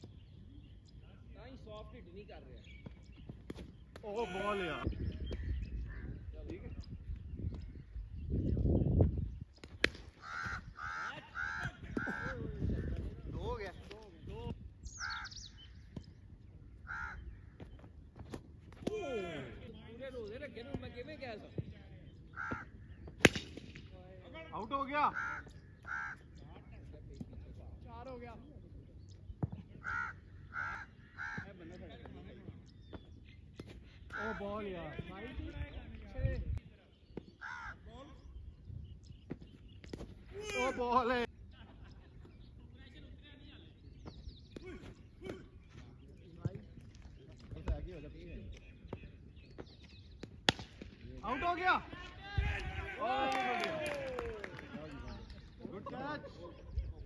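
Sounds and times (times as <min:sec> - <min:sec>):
crow cawing: 0:10.2 - 0:12.5, 0:15.0 - 0:15.4, 0:16.8 - 0:17.4, 0:22.3 - 0:22.8, 0:25.1 - 0:26.4, 0:29.8 - 0:31.5, 0:37.4 - 0:37.9
players shouting: 0:18.8 - 0:19.7, 0:51.2 - 0:54.8
cricket bat striking ball: 0:22.5 - 0:23.8.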